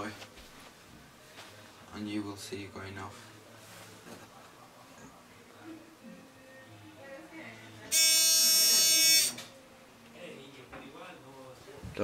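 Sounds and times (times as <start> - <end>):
loud steady buzzer: 7.9 - 9.5.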